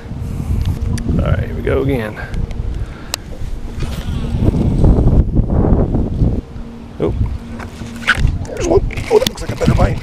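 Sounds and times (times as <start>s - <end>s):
wind on microphone: 0.0s - 10.0s
electric trolling motor hum: 2.4s - 10.0s.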